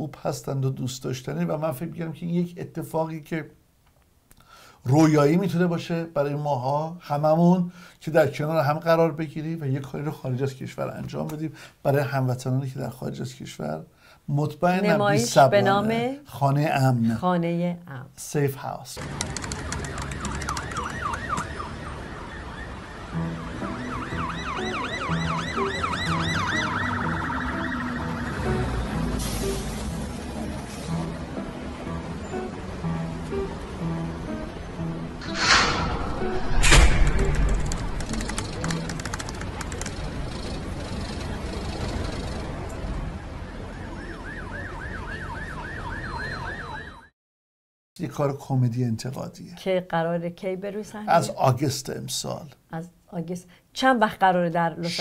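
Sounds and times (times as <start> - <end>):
yelping siren: 20.2 - 28.7, 43.5 - 47.1
rapid ticking: 37.3 - 41.2.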